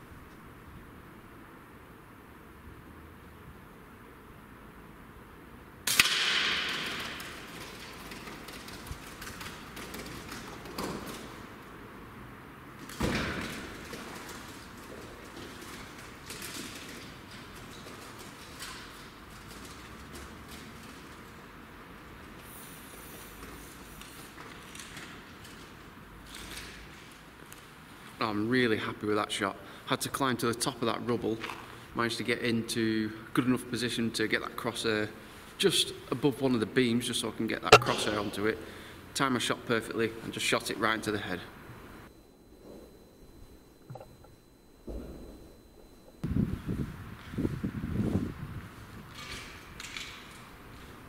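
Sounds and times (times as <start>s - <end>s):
sharp knock: 37.7s - 38.2s.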